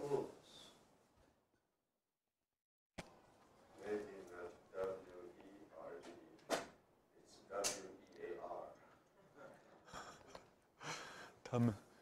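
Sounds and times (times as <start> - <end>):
man breathing in: 10.8 - 11.4.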